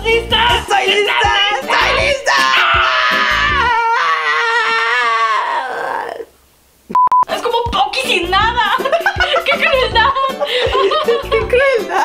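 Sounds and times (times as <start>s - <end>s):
person shouting excitedly: 0.1s - 6.2s
high voice long cry: 1.1s - 6.3s.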